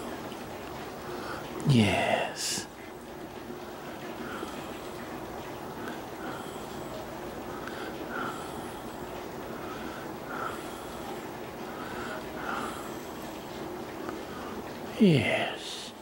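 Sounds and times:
rain hissing: 0:00.0 - 0:16.0.

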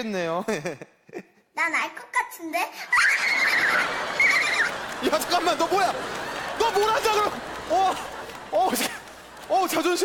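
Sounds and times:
high-pitched squealing laugh: 0:02.9 - 0:04.7
studio audience laughing: 0:02.9 - 0:10.0.

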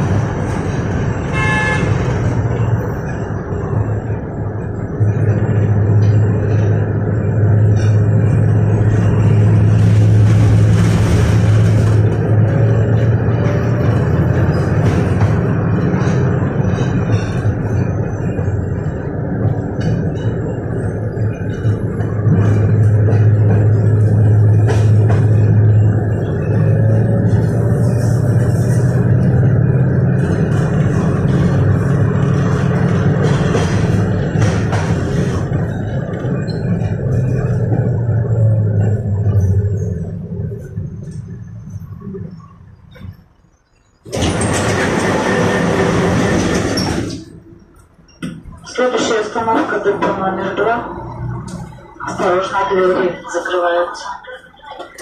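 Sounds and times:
tram wheels rumbling on rails: 0:00.0 - 0:55.0.

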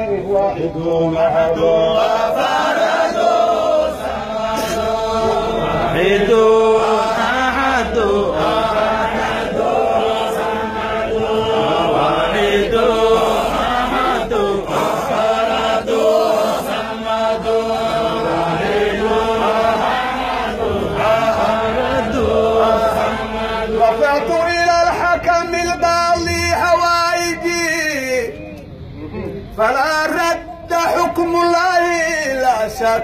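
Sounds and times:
men chanting a hymn: 0:00.0 - 0:28.4, 0:29.4 - 0:33.0.

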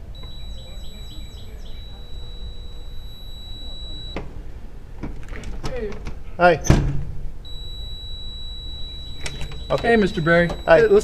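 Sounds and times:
high electronic door release beep: 0:00.0 - 0:04.3, 0:07.4 - 0:11.0.

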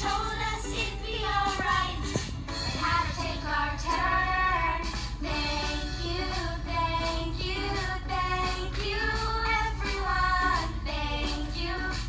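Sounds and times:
child singing: 0:00.0 - 0:02.1, 0:02.7 - 0:12.0
backing music track: 0:00.0 - 0:12.0.

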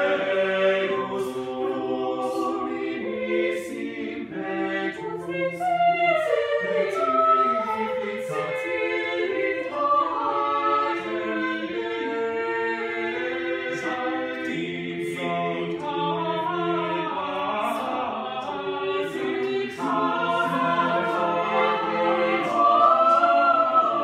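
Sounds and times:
choir singing a cappella: 0:00.0 - 0:24.0.

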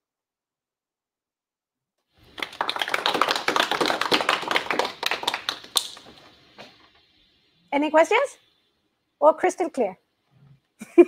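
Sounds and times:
small audience applauding: 0:02.2 - 0:06.4.

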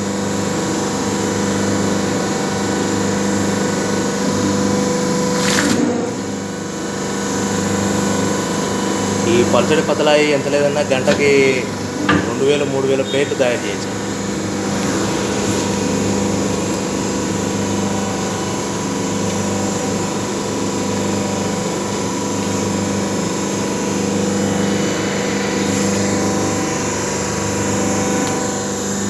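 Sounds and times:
machine motor and pump humming: 0:00.0 - 0:29.0.

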